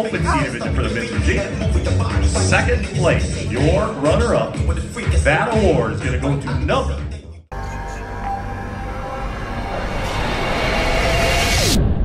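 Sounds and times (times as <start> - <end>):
low rumbling drone: 7.5 - 12.0.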